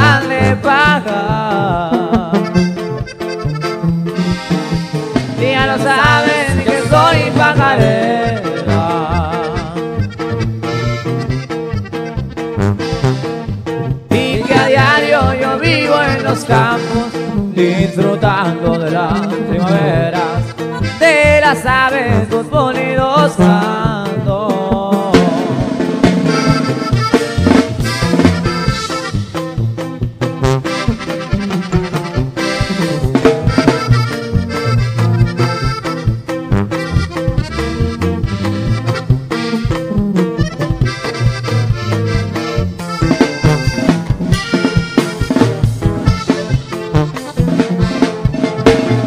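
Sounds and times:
person singing verses: 0.0s - 2.4s, 5.4s - 9.8s, 14.1s - 20.4s
accordion playing: 0.0s - 49.0s
norteno band music: 0.0s - 49.0s
rhythmic accompaniment with bass line: 0.0s - 49.0s.

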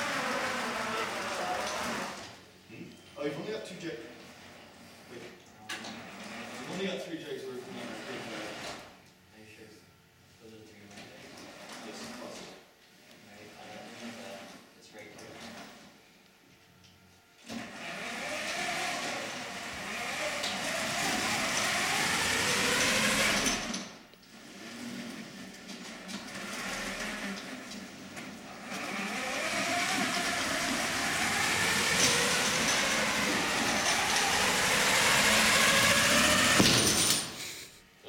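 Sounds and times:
robot drive motors whining: 17.6s - 24.0s, 28.5s - 36.6s.

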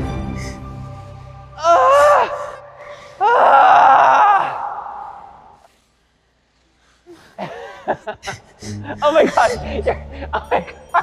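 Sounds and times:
person crying out: 1.6s - 5.3s
person laughing: 7.4s - 11.0s.

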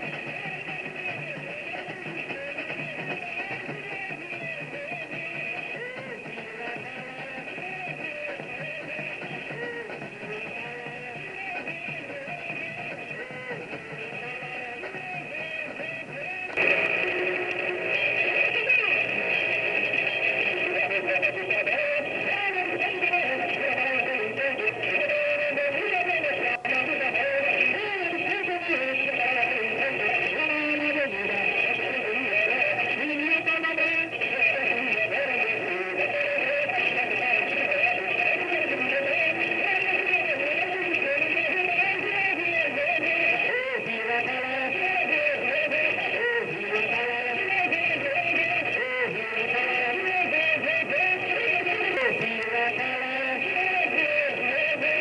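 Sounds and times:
voices singing: 0.0s - 55.0s.

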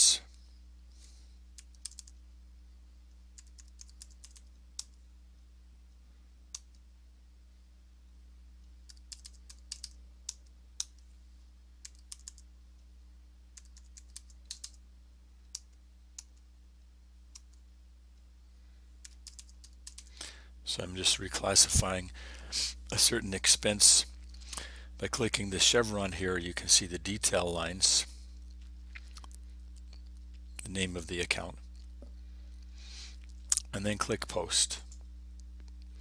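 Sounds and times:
faint electrical hum: 0.0s - 36.0s
computer keyboard typing: 1.6s - 2.2s, 3.3s - 5.0s, 8.8s - 11.0s, 11.8s - 12.5s, 13.6s - 14.8s, 19.0s - 20.1s.

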